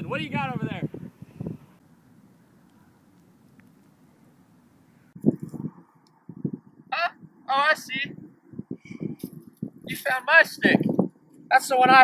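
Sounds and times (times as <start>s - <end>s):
wind buffeting microphone: 0.0s - 1.8s, 5.0s - 12.0s.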